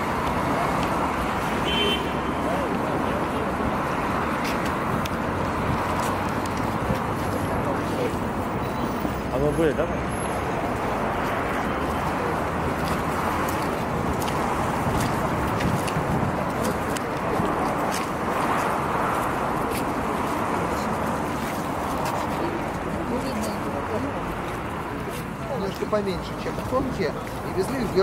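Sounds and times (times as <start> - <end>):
city street noise: 0.0 - 28.0.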